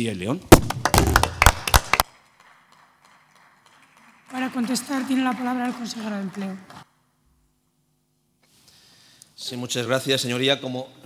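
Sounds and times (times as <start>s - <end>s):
people clapping: 0.5s - 6.9s.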